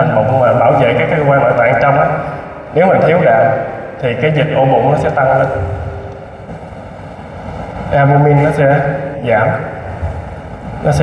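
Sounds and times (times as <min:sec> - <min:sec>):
low hall room rumble: 0:00.0 - 0:11.0.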